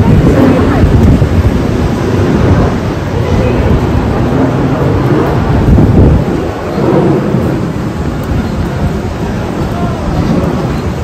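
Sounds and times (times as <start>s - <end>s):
loud uneven low rumble: 0.0s - 11.0s
rain on wet street: 0.0s - 11.0s.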